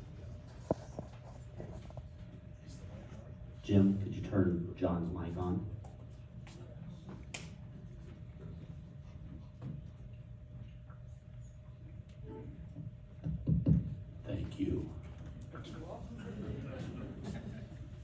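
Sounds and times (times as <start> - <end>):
faint steady hum: 0.0 - 18.0
low room rumble: 0.0 - 18.0.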